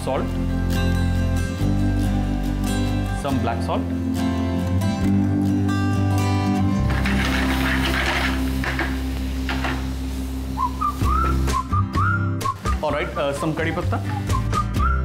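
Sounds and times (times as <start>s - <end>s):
background music with bass: 0.0s - 15.0s
whistled melody: 10.6s - 15.0s.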